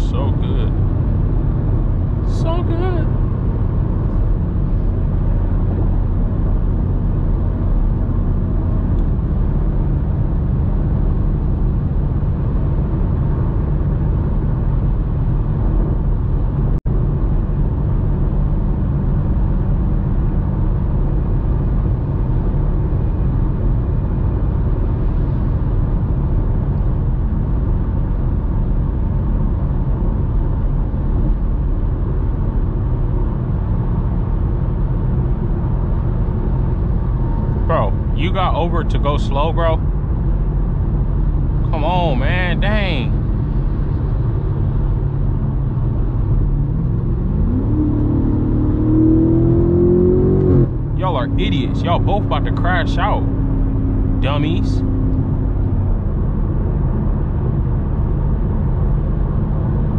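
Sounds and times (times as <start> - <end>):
low engine drone: 0.0 - 59.9
tyre and road noise: 19.6 - 59.9.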